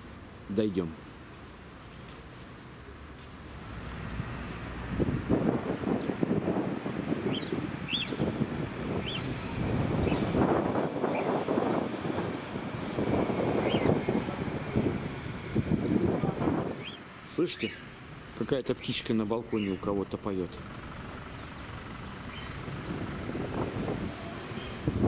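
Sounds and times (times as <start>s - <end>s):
wind buffeting microphone: 4.1s - 25.0s
small bird chirping: 7.0s - 10.4s, 13.4s - 14.6s, 16.8s - 22.9s, 24.0s - 24.9s.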